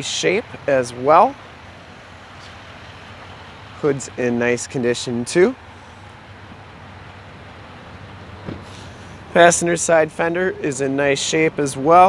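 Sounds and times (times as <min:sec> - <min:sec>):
light hiss: 0:07.8 - 0:09.3.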